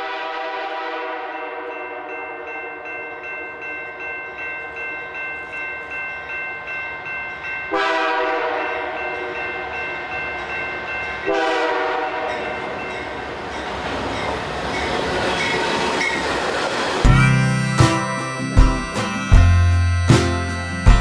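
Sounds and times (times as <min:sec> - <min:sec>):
locomotive horn blasts: 0:00.0 - 0:02.6, 0:07.7 - 0:09.4, 0:11.2 - 0:12.6, 0:17.1 - 0:21.0
train passing rumble: 0:00.0 - 0:21.0
crossing warning bell ringing: 0:01.2 - 0:21.0.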